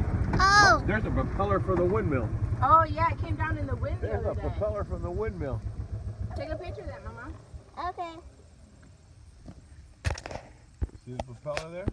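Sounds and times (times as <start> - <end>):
low rumble: 0.0 - 9.3.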